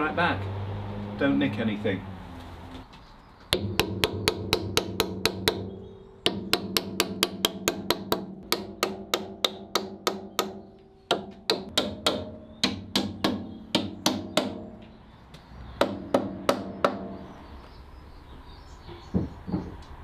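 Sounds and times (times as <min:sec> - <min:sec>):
wooden mallet tapping wood: 0:03.5 - 0:15.0.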